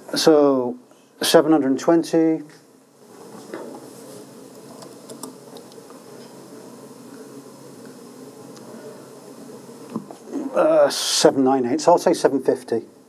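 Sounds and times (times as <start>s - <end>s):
room murmur: 0.0s - 13.0s.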